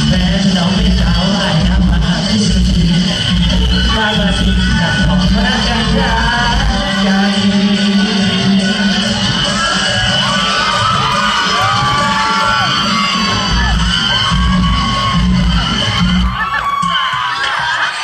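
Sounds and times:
crowd shouting and cheering: 0.0s - 18.0s
pop music over loudspeakers: 0.0s - 18.0s.

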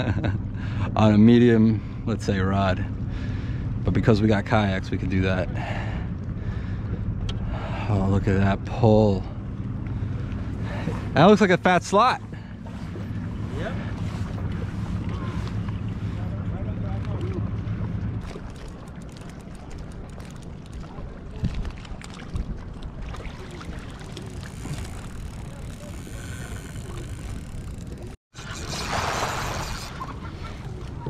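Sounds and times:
low steady hum: 0.0s - 31.0s
water noise: 0.0s - 31.0s
wind: 0.0s - 31.0s
fish splashing at surface: 28.4s - 30.8s.

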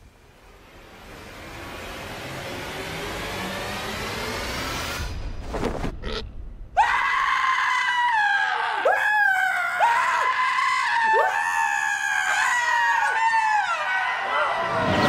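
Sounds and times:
man screaming: 6.8s - 15.0s.

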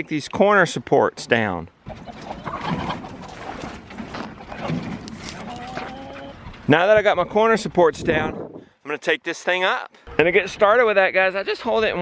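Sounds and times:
rustling and knocks of netting: 1.9s - 6.7s.

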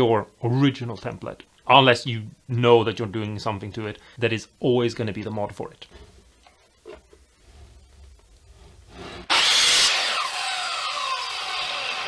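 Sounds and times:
miter saw cutting and spinning down: 9.2s - 12.0s.

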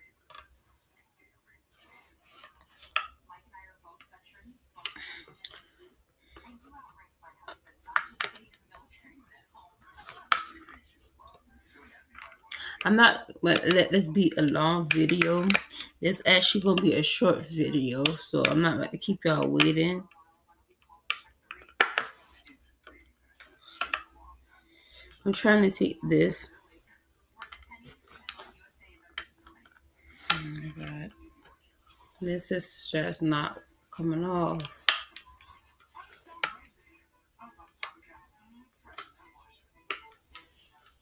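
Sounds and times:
plastic phone case clicking: 15.2s - 15.7s.

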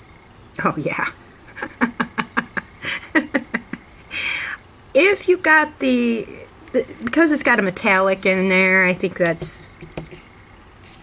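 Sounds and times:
woman laughing: 1.5s - 4.4s
in-breath: 4.1s - 4.6s.

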